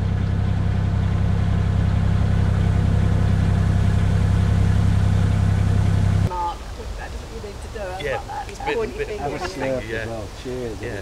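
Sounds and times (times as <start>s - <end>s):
boat diesel engine droning: 0.0s - 11.0s.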